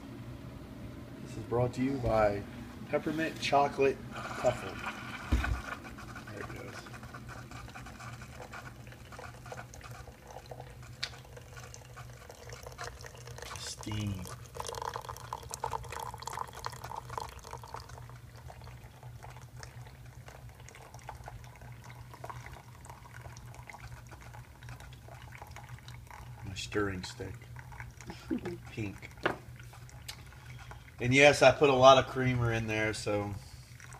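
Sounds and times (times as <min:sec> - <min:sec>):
steady low hum: 0:00.0 - 0:33.9
coffee trickling into mug: 0:02.9 - 0:33.9.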